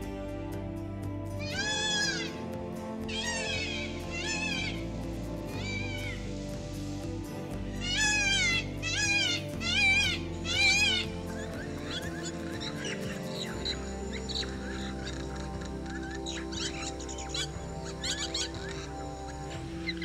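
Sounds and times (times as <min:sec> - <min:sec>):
soft background music: 0:00.0 - 0:20.0
peafowl wailing calls: 0:01.5 - 0:02.4, 0:03.1 - 0:04.8, 0:07.8 - 0:20.0.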